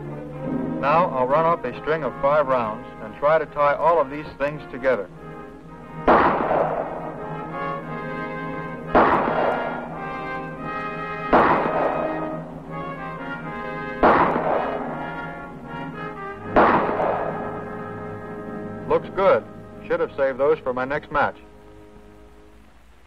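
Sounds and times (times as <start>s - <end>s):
background music: 0.0s - 23.0s
pistol shots with echo: 5.9s - 18.7s.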